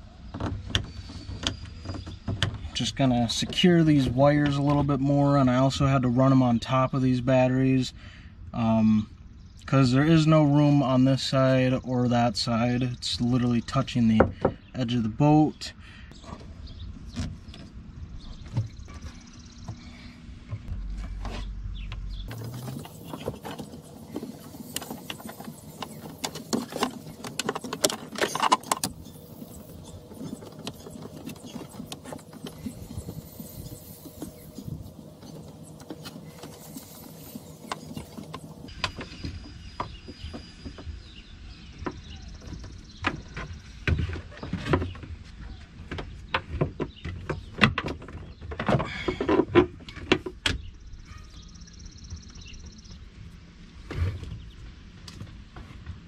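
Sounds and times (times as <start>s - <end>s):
cables rustling and knocking: 20.5s - 41.0s.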